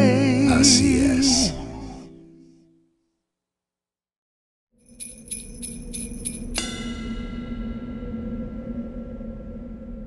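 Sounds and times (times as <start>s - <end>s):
small metal bells jingling: 4.8s - 6.6s
bell strike ringing: 4.9s - 8.0s.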